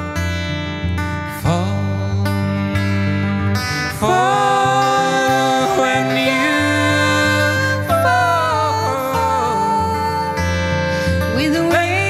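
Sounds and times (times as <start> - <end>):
acoustic guitar strumming: 0.0 - 12.0
accordion holding long notes: 4.1 - 11.3.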